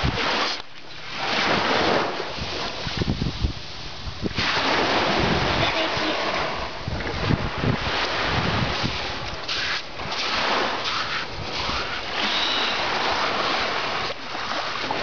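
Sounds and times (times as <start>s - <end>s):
wind buffeting microphone: 0.0s - 0.4s, 1.4s - 14.2s
surf washing onto beach: 0.0s - 15.0s.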